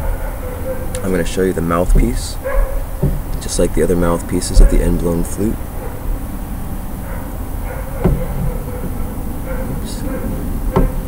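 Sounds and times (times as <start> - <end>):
steady background hum: 0.0 - 11.0
sharp knocks: 1.9 - 3.6, 7.7 - 11.0.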